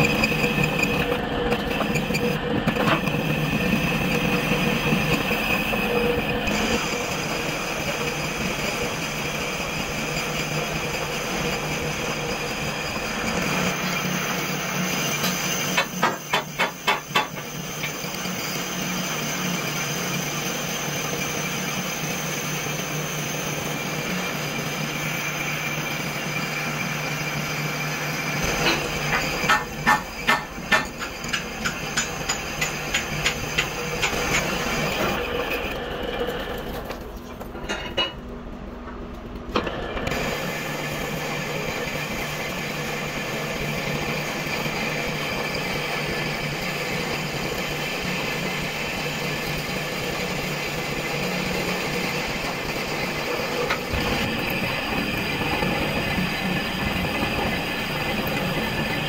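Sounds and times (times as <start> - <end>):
lathe tool cutting metal: 0.0 - 36.8, 39.7 - 59.0
metal lathe running: 0.0 - 36.9, 39.6 - 59.0.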